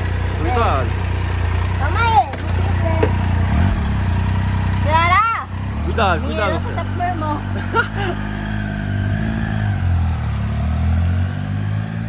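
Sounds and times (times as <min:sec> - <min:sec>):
motorcycle engine idling: 0:00.0 - 0:10.9.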